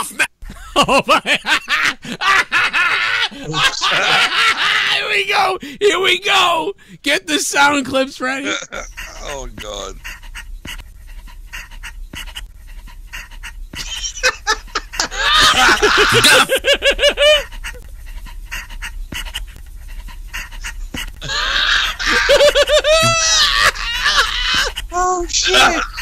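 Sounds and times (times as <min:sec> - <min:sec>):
man laughing hard: 0:00.0 - 0:05.1, 0:13.2 - 0:17.9, 0:20.4 - 0:24.9
breathing: 0:05.6 - 0:05.8, 0:06.8 - 0:07.0.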